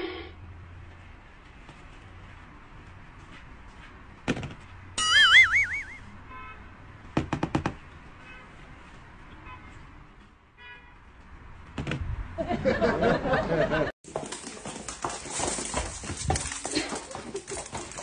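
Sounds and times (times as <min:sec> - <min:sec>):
warbling comedy tone: 0:05.0 - 0:06.0.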